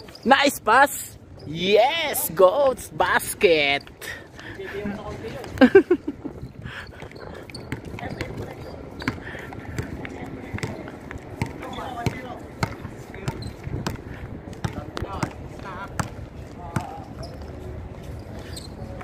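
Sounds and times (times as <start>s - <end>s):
basketball bouncing on concrete: 7.0s - 17.0s.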